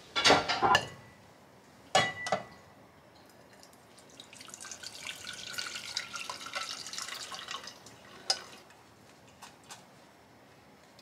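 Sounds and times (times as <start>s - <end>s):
liquid pouring and splashing: 3.5s - 8.7s.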